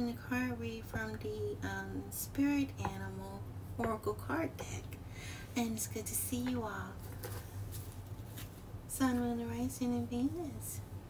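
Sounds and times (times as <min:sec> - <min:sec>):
cards shuffling and rustling: 0:07.0 - 0:08.6.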